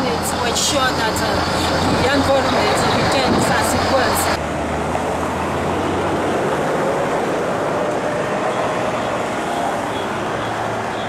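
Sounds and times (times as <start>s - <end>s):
motor vehicle running: 0.0s - 11.0s.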